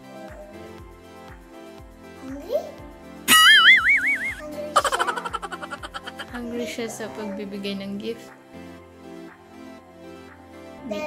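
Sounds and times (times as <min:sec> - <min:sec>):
light background music with beat: 0:00.0 - 0:11.0
cartoon boing sound effect: 0:03.3 - 0:06.3.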